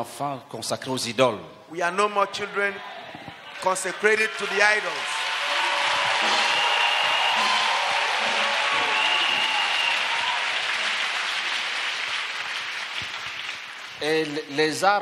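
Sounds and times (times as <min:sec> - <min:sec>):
high held calls: 0:03.5 - 0:12.1
congregation applauding: 0:03.5 - 0:15.0.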